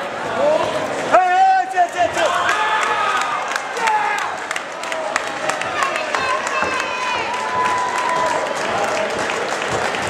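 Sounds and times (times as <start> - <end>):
crowd applauding and cheering: 1.6 - 10.0.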